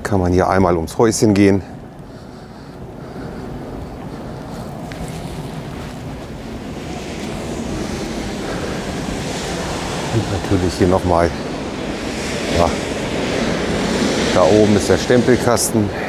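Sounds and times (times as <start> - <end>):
wind rumbling on microphone: 0.0 - 16.0
rushing water: 4.1 - 16.0.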